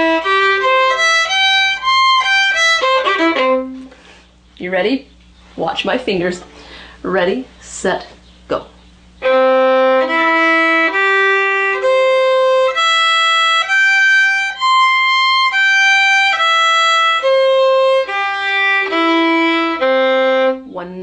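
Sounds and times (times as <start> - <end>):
fiddle playing arpeggio: 0.0 - 3.9, 9.2 - 20.7.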